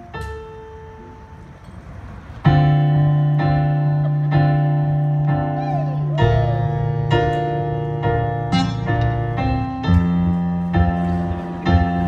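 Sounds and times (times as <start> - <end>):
electric piano chords: 0.0 - 12.0.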